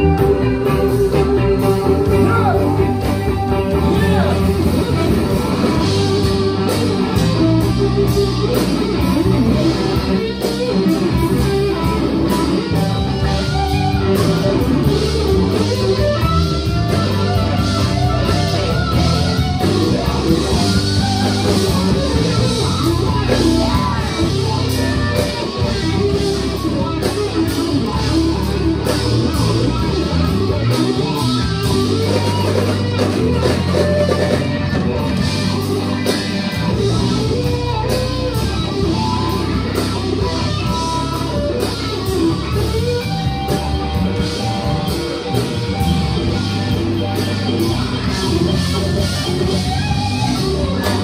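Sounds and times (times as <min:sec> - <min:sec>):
blues band playing: 0:00.0 - 0:51.0
electric guitar lead: 0:00.0 - 0:51.0.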